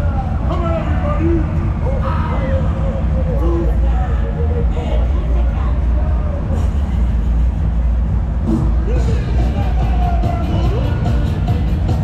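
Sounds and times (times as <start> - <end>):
loud low rumble: 0.0 - 12.0
music: 0.0 - 12.0
voices: 0.0 - 12.0.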